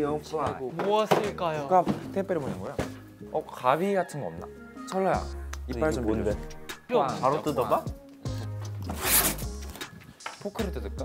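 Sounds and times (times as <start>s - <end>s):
packing tape ripping off box: 8.9s - 9.5s.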